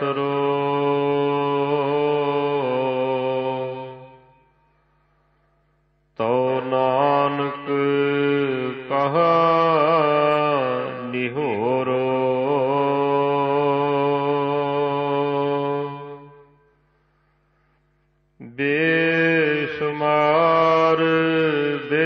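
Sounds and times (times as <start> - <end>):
person singing melismatic notes: 18.6 - 22.0.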